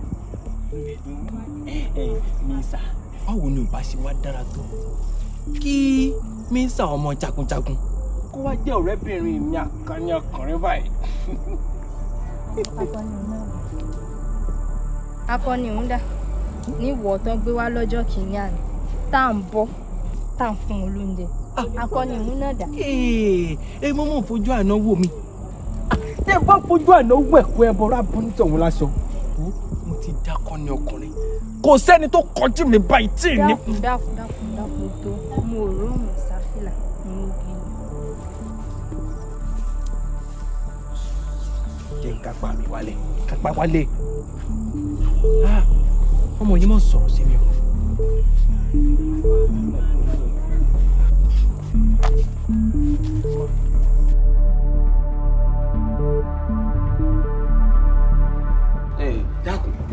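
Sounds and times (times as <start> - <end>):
crickets trilling: 0.0 - 59.9
soft background music: 0.0 - 59.9
man speaking: 26.3 - 33.8
person speaking emphatically: 31.6 - 33.8.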